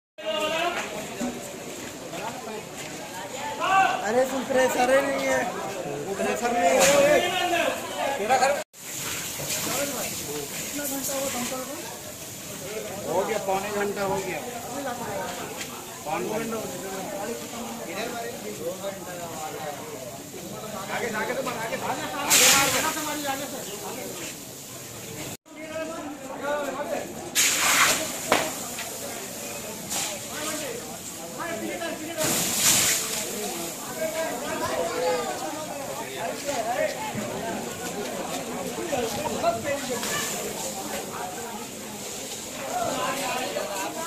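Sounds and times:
people talking: 0.2s - 44.0s
water splash and hiss: 8.7s - 25.4s, 27.2s - 44.0s.

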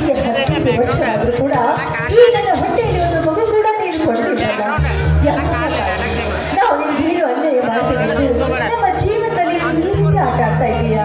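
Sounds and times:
woman speaking into microphone: 0.0s - 11.0s.

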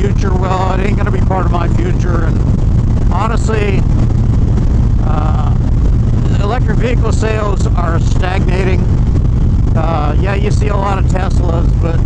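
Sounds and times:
motorcycle engine deep rumble: 0.0s - 12.0s
wind rushing over microphone: 0.0s - 12.0s.

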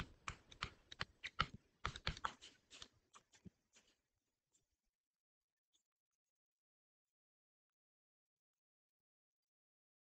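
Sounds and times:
stylus tapping on tablet screen: 0.0s - 3.9s.

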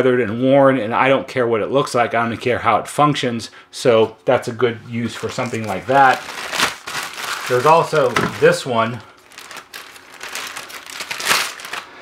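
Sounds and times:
plastic bag crinkling: 5.0s - 12.0s.

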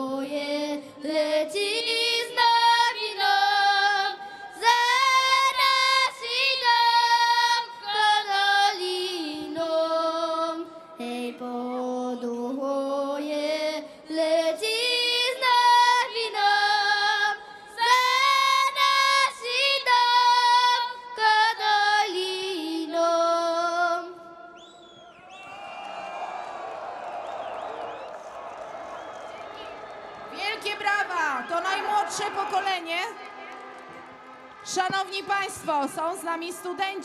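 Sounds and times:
girl singing unaccompanied: 0.0s - 24.3s.

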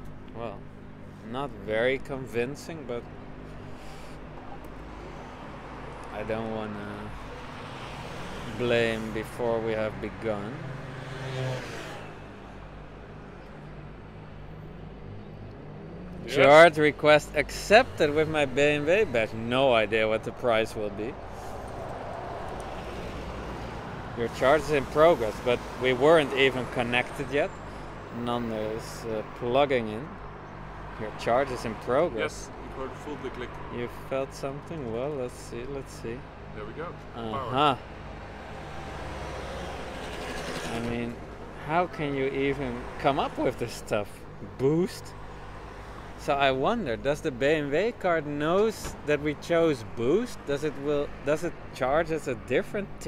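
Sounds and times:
city street hum: 0.0s - 53.0s.

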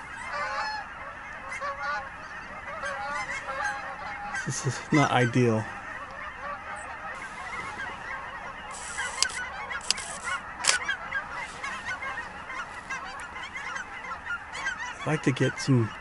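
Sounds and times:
flock of birds chattering: 0.0s - 16.0s
camera shutter clicks: 8.8s - 10.8s.

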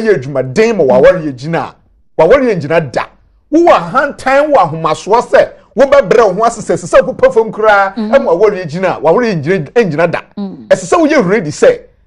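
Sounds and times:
person talking: 0.0s - 11.8s.

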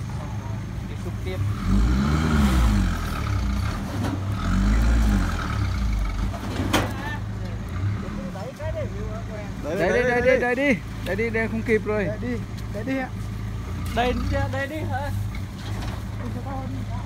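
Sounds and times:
truck engine revving: 0.0s - 17.0s.

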